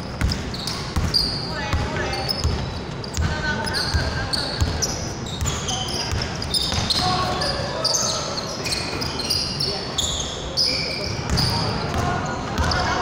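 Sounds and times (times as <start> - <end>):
sneaker squeaks: 0.0 - 13.0
basketball bouncing: 0.2 - 7.0, 11.2 - 13.0.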